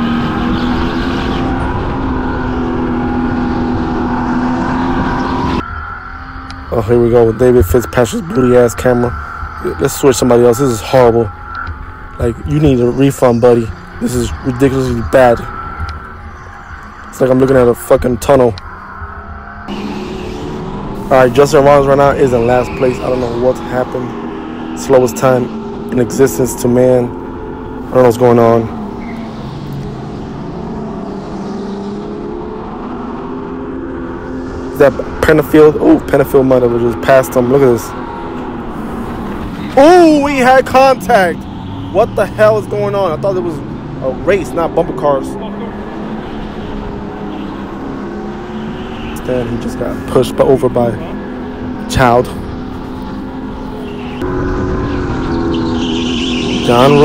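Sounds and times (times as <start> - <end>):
go-kart motor droning: 0.0 - 57.0
rumbling tyre and chassis noise: 0.0 - 57.0
track noise: 0.0 - 57.0.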